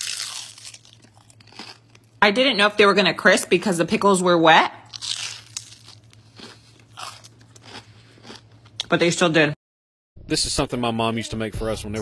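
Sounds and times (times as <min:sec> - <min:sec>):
person chewing crunchy food: 0:00.0 - 0:02.2, 0:04.9 - 0:08.9.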